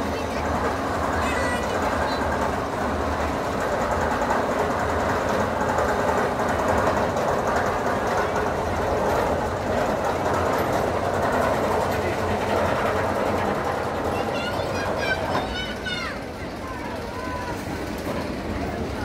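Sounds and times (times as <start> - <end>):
faint rapid clatter: 0.0 - 19.0
roller coaster wheels rumbling on rail: 0.0 - 19.0.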